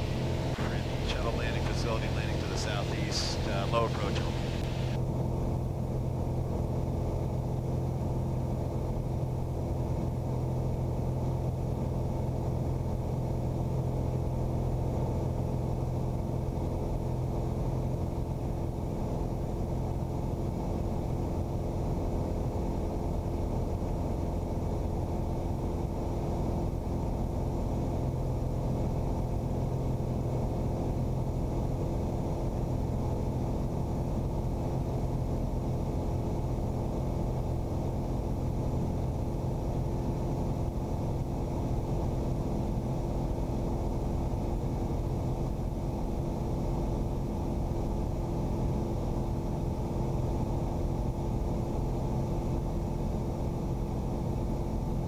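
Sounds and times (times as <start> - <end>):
airplane engine and propeller drone: 0.0 - 55.0.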